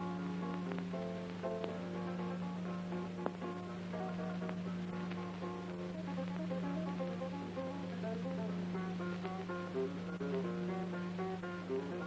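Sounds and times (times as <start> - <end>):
plucked guitar notes: 0.0 - 12.0.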